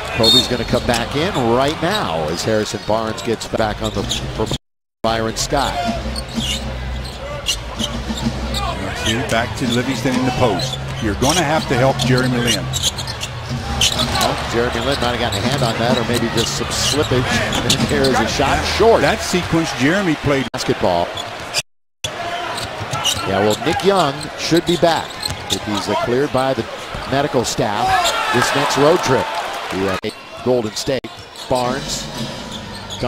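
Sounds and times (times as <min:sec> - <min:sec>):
arena crowd noise: 0:00.0 - 0:33.0.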